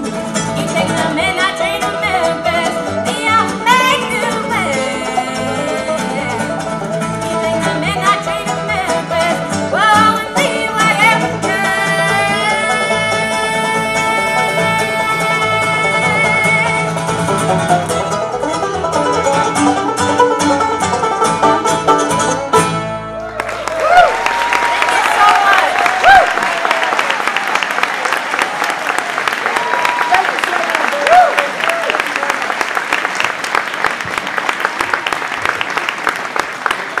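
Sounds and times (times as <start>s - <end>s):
bluegrass band playing: 0.0s - 28.6s
audience applauding and cheering: 23.2s - 37.0s.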